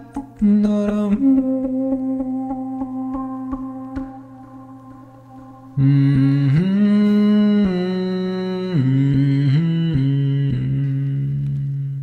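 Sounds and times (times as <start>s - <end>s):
man humming: 0.0s - 12.0s.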